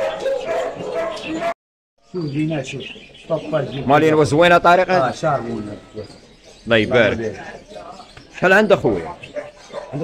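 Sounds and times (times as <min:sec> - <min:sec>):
dog barking: 0:00.0 - 0:01.6, 0:09.3 - 0:10.0
men's voices: 0:02.2 - 0:10.0.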